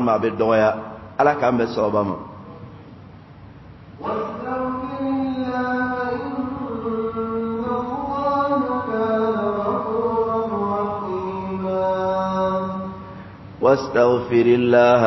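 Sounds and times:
person reciting in melodic chant: 0.0 - 2.2, 4.0 - 15.0.

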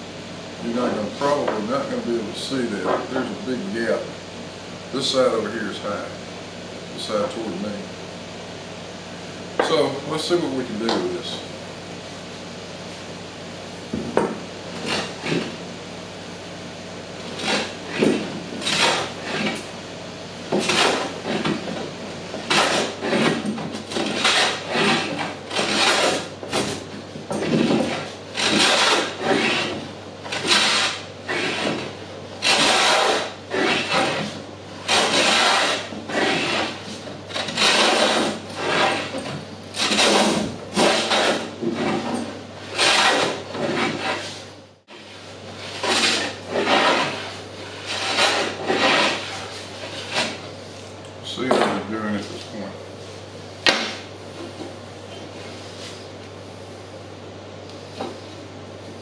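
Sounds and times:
hand plane shaving wood: 17.3 - 19.6, 20.6 - 21.7, 22.4 - 26.8, 27.4 - 50.4.

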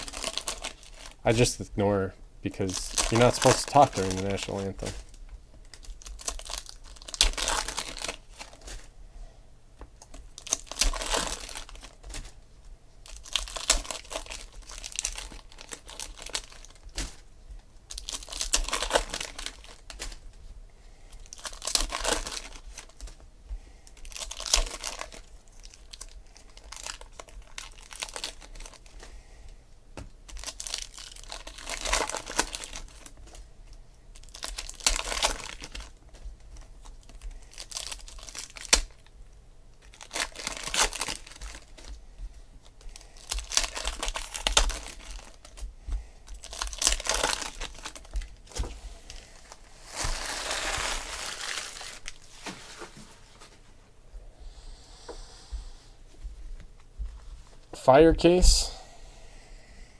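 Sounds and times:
foil wrappers tearing and crinkling: 0.0 - 1.6, 2.6 - 8.9, 10.0 - 12.4, 13.0 - 17.3, 17.9 - 20.3, 21.2 - 23.2, 23.9 - 29.1, 30.2 - 33.4, 34.2 - 39.1, 39.8 - 42.0, 42.6 - 53.0.

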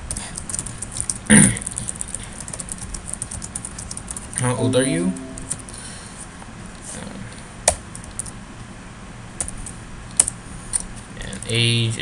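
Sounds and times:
low steady hum: 4.4 - 6.4.

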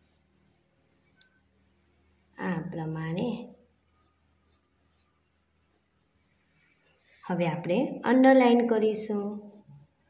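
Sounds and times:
pencil scratching on paper: 0.0 - 1.1, 4.0 - 7.4, 9.1 - 10.0
person speaking: 7.1 - 9.6.

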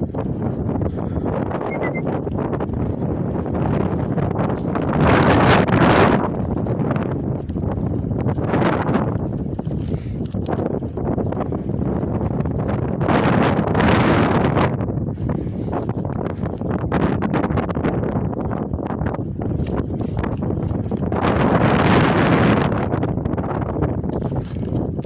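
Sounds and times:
footsteps through dry grass: 0.0 - 25.0
wind buffeting microphone: 0.0 - 25.0.

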